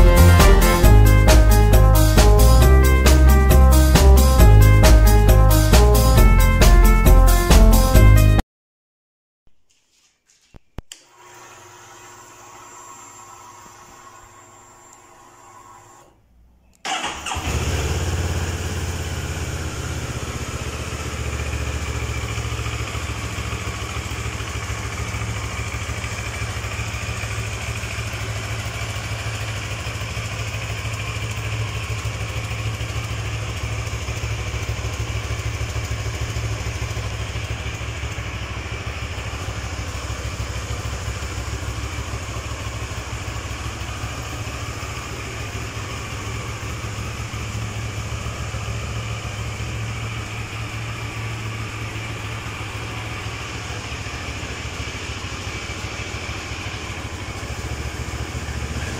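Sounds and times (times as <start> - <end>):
motorcycle engine starting and idling: 0.0 - 8.3, 15.0 - 58.9.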